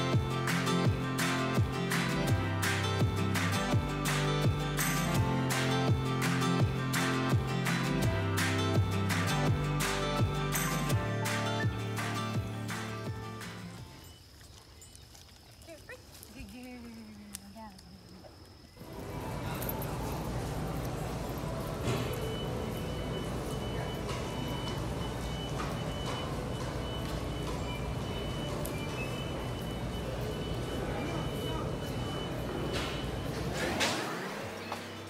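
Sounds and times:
high electronic beep: 0:21.9 - 0:33.4.

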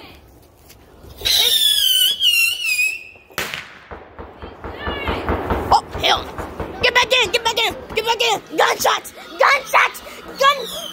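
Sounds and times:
whistling firework: 0:01.2 - 0:03.7
firework bang: 0:03.3 - 0:08.1.

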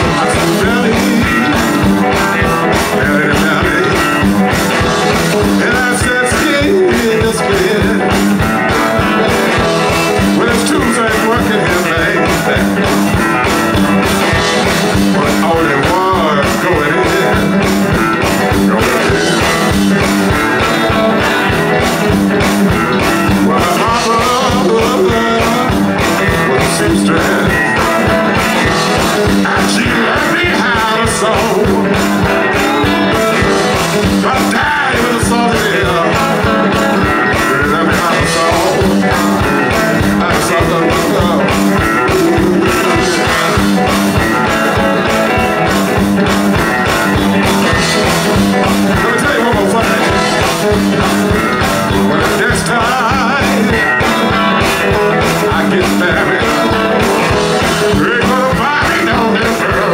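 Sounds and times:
electric guitars: 0:00.0 - 0:59.9
steady drum beat: 0:00.0 - 0:59.9.

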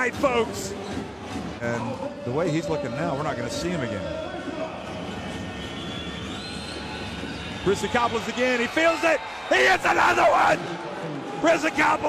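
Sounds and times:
indoor arena crowd noise: 0:00.0 - 0:12.0.

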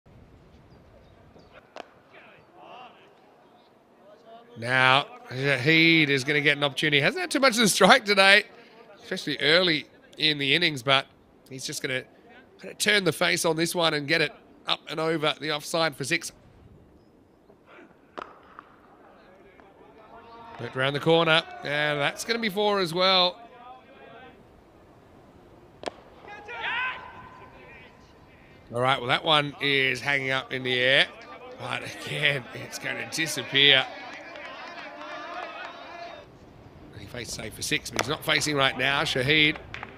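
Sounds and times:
open-field ambience: 0:00.1 - 0:39.9
distant shouts: 0:01.5 - 0:09.0, 0:17.6 - 0:24.6, 0:25.7 - 0:36.4
cricket bat striking ball: 0:18.1 - 0:19.7, 0:25.8 - 0:27.6, 0:38.0 - 0:38.2, 0:39.5 - 0:39.9.

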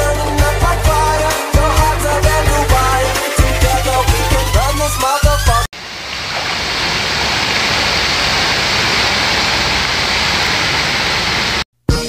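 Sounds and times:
dance music with bass beat: 0:00.0 - 0:05.7.

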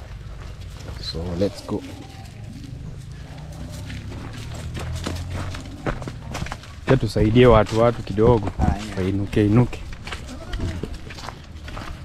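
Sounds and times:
footsteps on dirt path: 0:00.0 - 0:12.0
goat hooves on dirt: 0:00.0 - 0:12.0.

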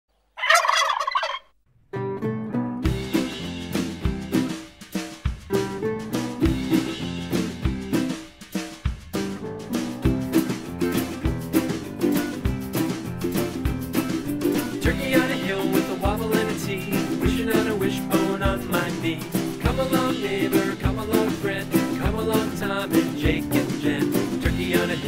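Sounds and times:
turkey gobbling: 0:00.4 - 0:01.6
ukulele strumming: 0:01.9 - 0:08.4, 0:09.2 - 0:25.0
steady drum beat: 0:02.9 - 0:25.0.

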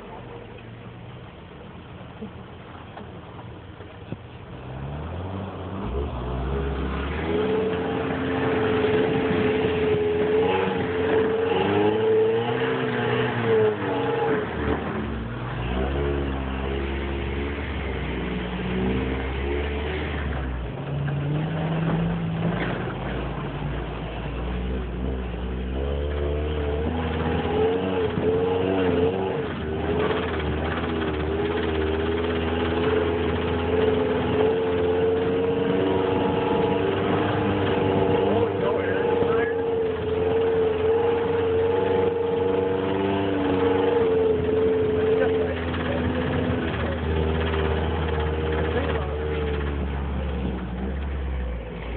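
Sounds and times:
off-road engine running under load: 0:00.0 - 0:51.9.

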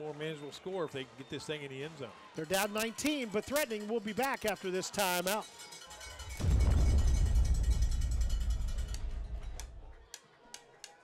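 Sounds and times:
deep boom: 0:06.4 - 0:10.0.

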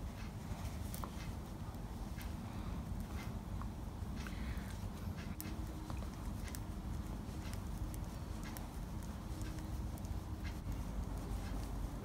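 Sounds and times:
steady low hum: 0:00.0 - 0:12.0
knitting needles clicking: 0:03.1 - 0:12.0.

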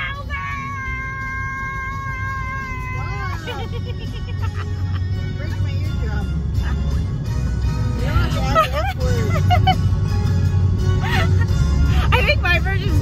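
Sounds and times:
car road rumble: 0:00.0 - 0:13.0.

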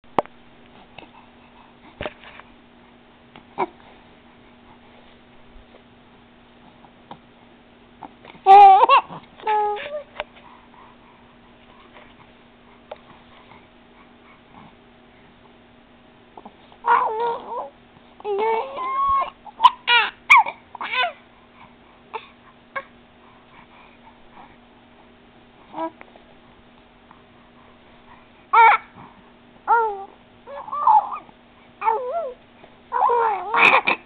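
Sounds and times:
baby cooing and squealing: 0:16.8 - 0:21.2, 0:28.6 - 0:29.0, 0:29.7 - 0:34.0.

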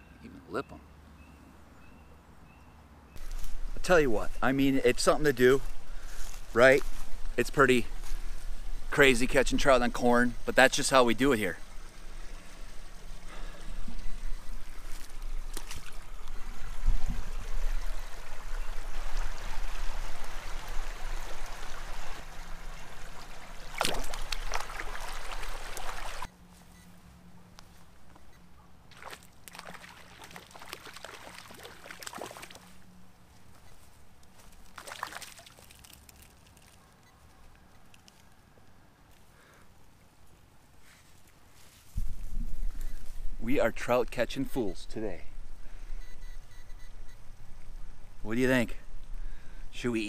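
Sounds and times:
stream water running over stones: 0:08.9 - 0:26.3, 0:28.9 - 0:32.7, 0:34.7 - 0:36.7.

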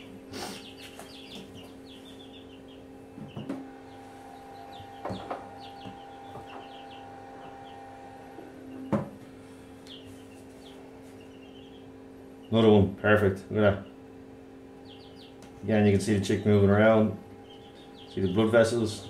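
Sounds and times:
chicks chirping: 0:00.0 - 0:19.0
steady low hum: 0:00.0 - 0:19.0.

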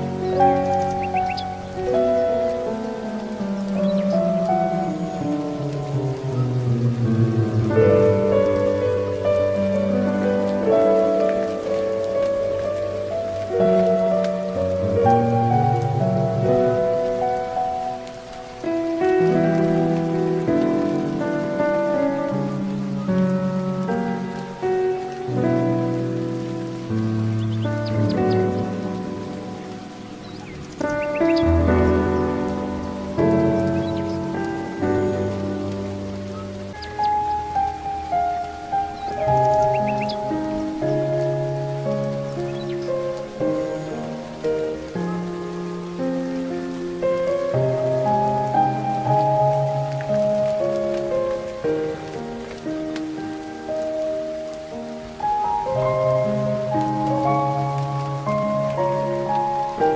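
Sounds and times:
gentle solo piano music: 0:00.0 - 0:59.9
rain-like hiss: 0:00.0 - 0:59.9.

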